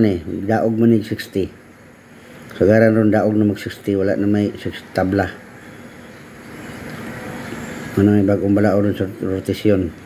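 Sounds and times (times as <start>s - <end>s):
rushing hum of pool hall: 0.0s - 10.0s.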